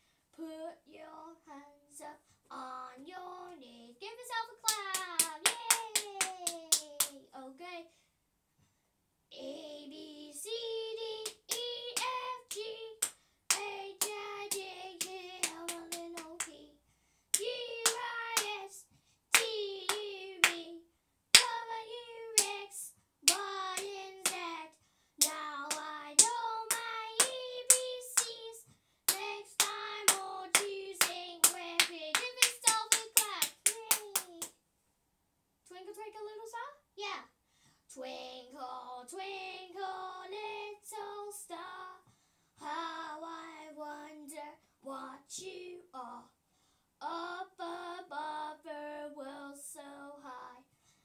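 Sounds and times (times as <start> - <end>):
girl singing: 0.4 - 8.0, 9.3 - 34.5, 37.9 - 46.4, 47.0 - 50.7
hand claps: 4.7 - 7.2, 11.2 - 16.6, 17.4 - 18.6, 19.3 - 20.7, 21.4 - 21.6, 22.3 - 22.7, 23.3 - 24.5, 25.2 - 28.4, 29.1 - 34.6.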